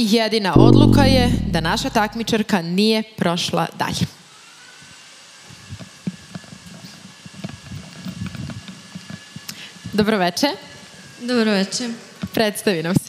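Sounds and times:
faint low knocks: 0.6 - 2.3.

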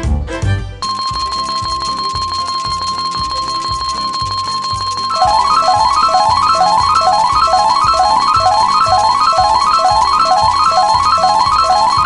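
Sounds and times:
rapid ticking: 0.8 - 12.0
steady high tone: 0.8 - 12.0
pulsing bass beat: 0.9 - 12.0.

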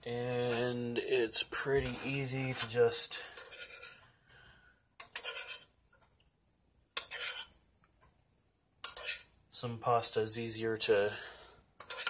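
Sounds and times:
metal utensil scraping saucepan: 1.4 - 4.0, 5.0 - 5.7, 7.0 - 7.6, 8.8 - 9.4, 11.8 - 12.0.

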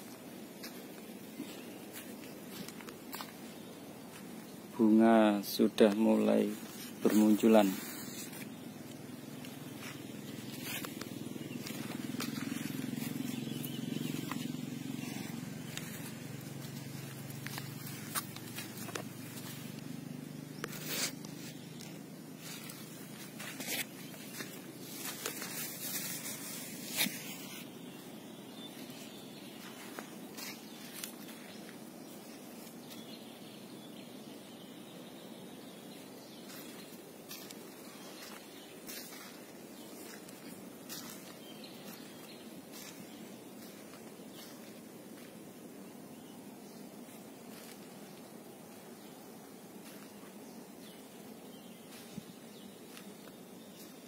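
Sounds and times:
leaves rustling: 0.0 - 34.1, 35.7 - 54.0.

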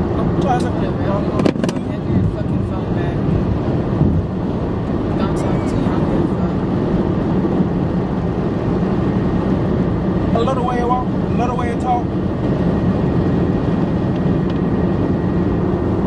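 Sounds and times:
road and engine rumble in car: 0.0 - 16.0.

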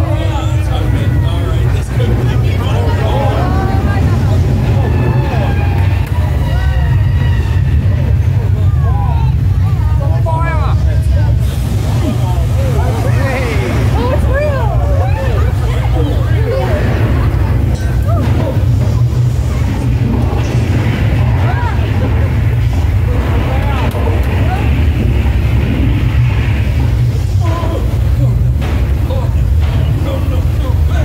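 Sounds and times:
loud low rumble: 0.0 - 31.0.

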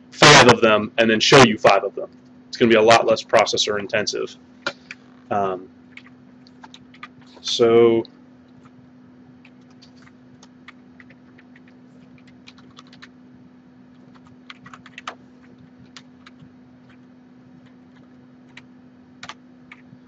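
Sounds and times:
computer keyboard keystrokes: 5.9 - 7.2, 9.4 - 13.1, 14.0 - 17.0, 17.6 - 19.9.

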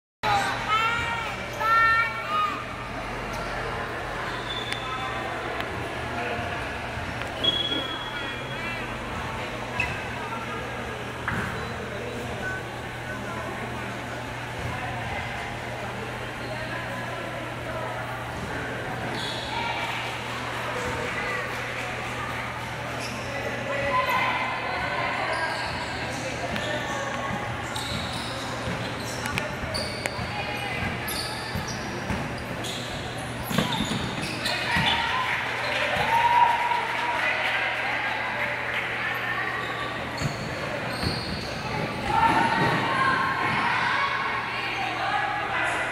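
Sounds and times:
crowd chatter: 0.2 - 45.9
sneaker squeaks on court: 3.3 - 5.1, 7.3 - 8.6, 9.7 - 10.2, 11.2 - 12.6, 19.0 - 19.6, 24.8 - 35.1, 39.6 - 42.8.

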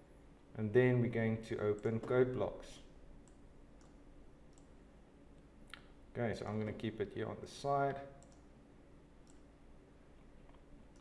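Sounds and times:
faint computer mouse clicks: 8.2 - 8.5, 9.2 - 9.4.

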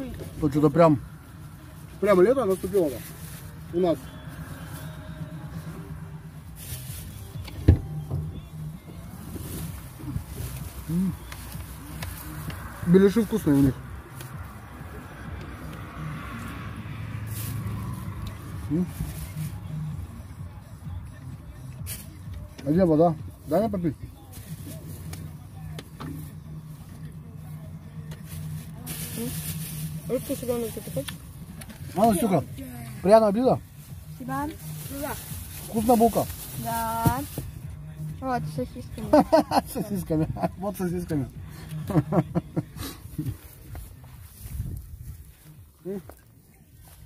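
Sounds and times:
low engine hum: 0.0 - 47.0.

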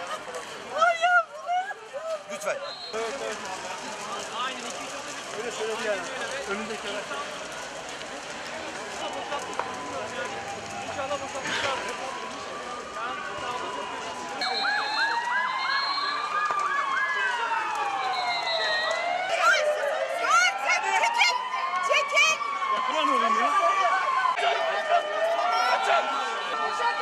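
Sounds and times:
wailing emergency sirens: 0.0 - 27.0
warbling siren: 9.2 - 27.0.

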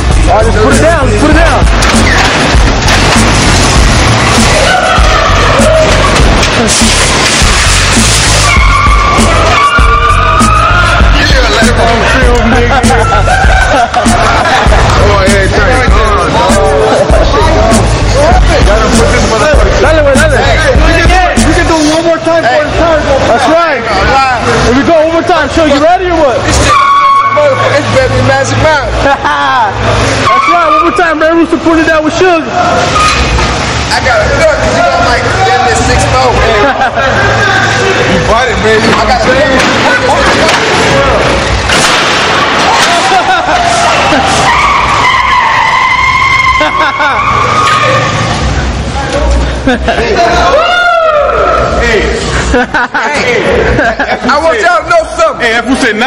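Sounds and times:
loud low rumble: 0.0 - 20.1
music with heavy bass beat: 0.0 - 21.8
loud noisy din: 0.0 - 52.7
tires scrubbing and squealing: 0.0 - 52.7
men shouting and whooping: 4.2 - 6.8, 8.0 - 21.6, 42.4 - 48.5, 49.8 - 52.6.

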